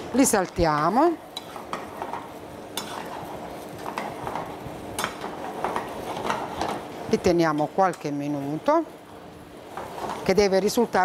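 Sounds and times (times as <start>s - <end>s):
food sizzling in a frying pan: 0.0s - 11.0s
metal spoon scraping a pan: 1.3s - 6.9s.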